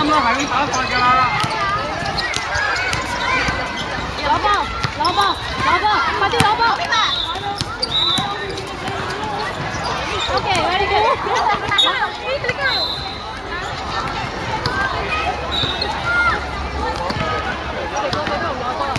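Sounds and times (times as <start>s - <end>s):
people calling out: 0.0s - 18.9s
basketball bouncing on court: 1.2s - 14.9s, 18.0s - 18.9s.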